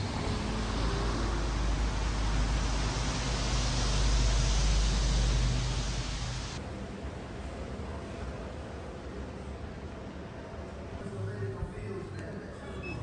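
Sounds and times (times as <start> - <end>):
rain hissing: 0.0 - 6.6.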